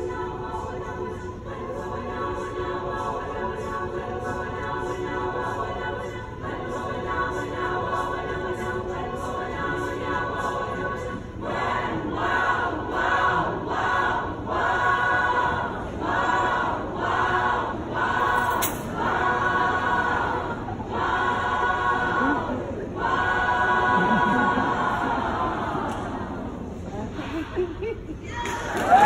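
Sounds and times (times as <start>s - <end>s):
mixed choir singing chords: 0.0s - 27.7s.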